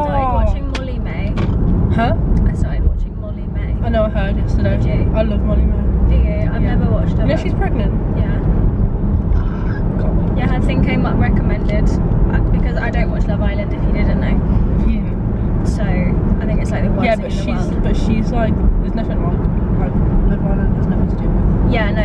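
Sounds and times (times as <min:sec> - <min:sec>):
people talking: 0:00.0 - 0:08.5, 0:09.4 - 0:22.0
car cabin road rumble: 0:00.0 - 0:22.0.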